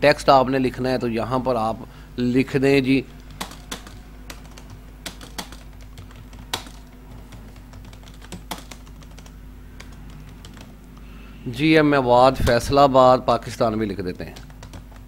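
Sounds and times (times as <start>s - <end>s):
faint steady hum: 0.0s - 15.0s
keyboard typing clicks: 3.1s - 11.1s.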